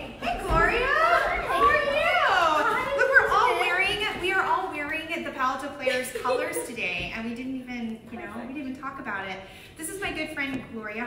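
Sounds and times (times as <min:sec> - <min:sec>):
women exclaiming: 0:00.2 - 0:04.0.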